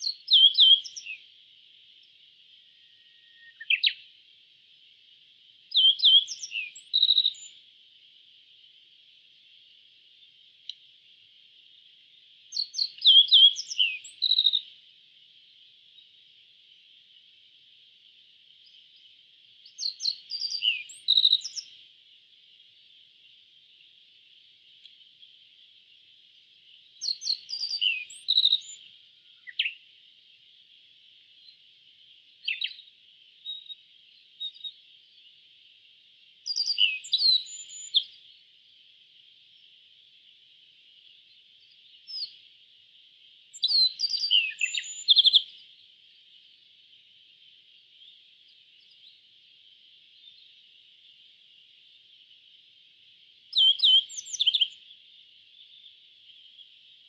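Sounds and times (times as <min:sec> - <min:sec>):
bird singing: 0:00.0 - 0:57.0.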